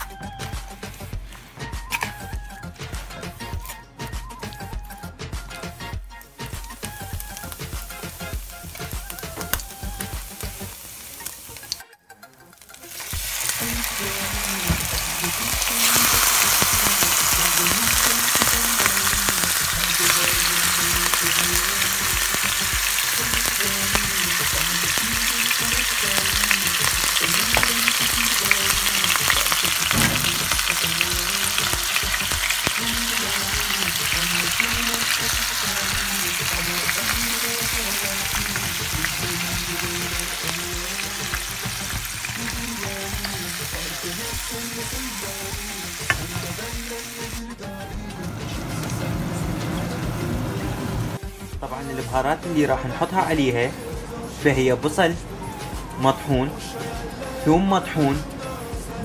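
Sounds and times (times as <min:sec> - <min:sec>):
soft background music: 0:00.0 - 0:59.0
chicken sizzling in a pan: 0:06.3 - 0:11.8, 0:12.6 - 0:47.5.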